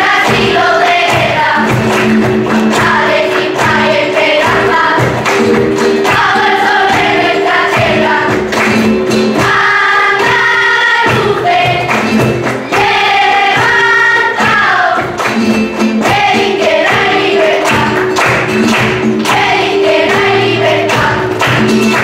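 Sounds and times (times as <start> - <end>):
children's choir singing: 0.0 - 22.0
flamenco guitar: 0.0 - 22.0
rhythmic percussive strokes: 0.0 - 22.0.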